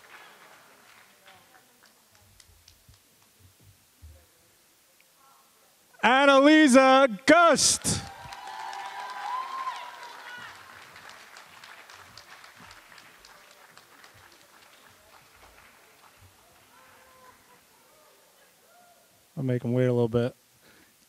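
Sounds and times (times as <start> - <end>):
audience clapping: 0.0 - 3.3, 7.4 - 17.6
voices cheering: 6.0 - 11.7, 16.4 - 19.2.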